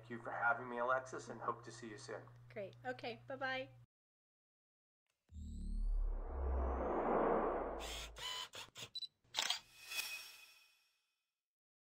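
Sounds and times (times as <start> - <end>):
low whoosh: 5.4 - 8.2
camera shutter clicks: 9.4 - 9.6.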